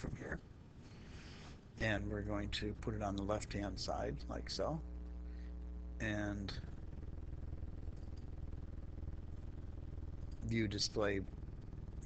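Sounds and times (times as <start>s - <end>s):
low steady hum: 0.0s - 12.0s
fluttering rumble: 1.9s - 12.0s.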